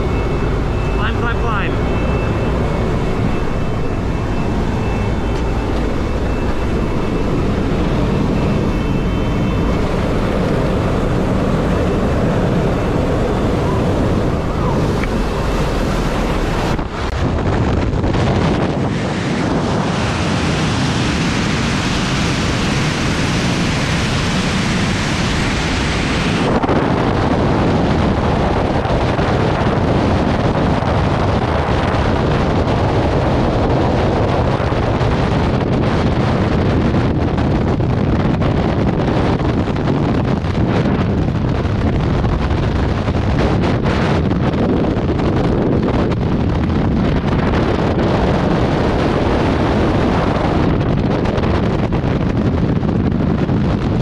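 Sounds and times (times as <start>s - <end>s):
airplane engine and propeller drone: 0.0s - 54.0s
wind rushing on camera: 0.0s - 54.0s.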